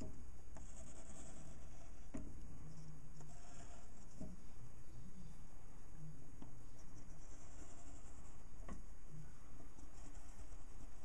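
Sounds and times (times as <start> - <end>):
low steady hum: 0.0 - 11.0
pen scratching on paper: 0.6 - 2.1, 2.7 - 4.3, 6.7 - 8.5, 9.7 - 11.0.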